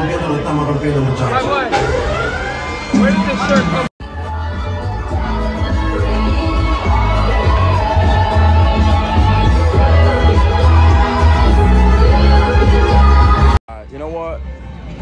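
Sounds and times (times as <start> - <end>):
crowd voices and cheers: 0.0 - 13.6
nightclub music with heavy bass: 0.0 - 13.6.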